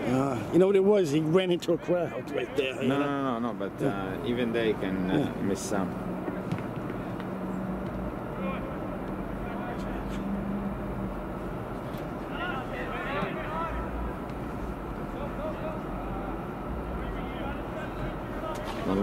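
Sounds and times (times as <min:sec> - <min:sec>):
outdoor background noise: 0:00.0 - 0:19.0
distant soccer players shouting: 0:04.6 - 0:19.0.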